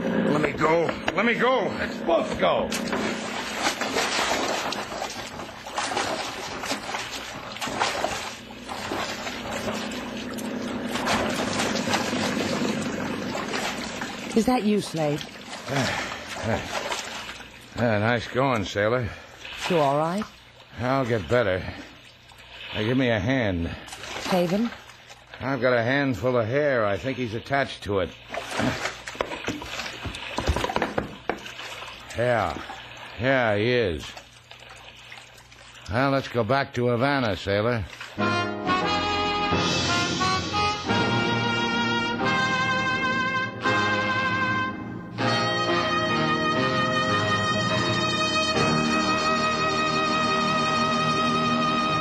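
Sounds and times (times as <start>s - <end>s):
steady low hum: 0.0s - 19.5s
water splashing and sloshing: 0.6s - 38.5s, 47.4s - 51.0s
knocks and thuds on boat: 29.2s - 31.5s.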